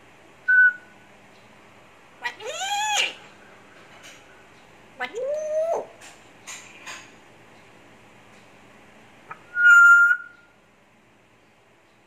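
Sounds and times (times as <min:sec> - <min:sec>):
parrot whistle: 0:00.5 - 0:00.9, 0:09.4 - 0:10.5
parrot meow-like calls: 0:02.2 - 0:03.3.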